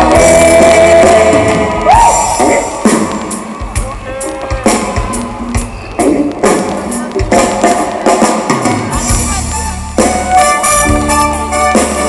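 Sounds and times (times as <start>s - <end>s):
drum kit beat: 0.0s - 12.0s
live pop band playing: 0.0s - 12.0s.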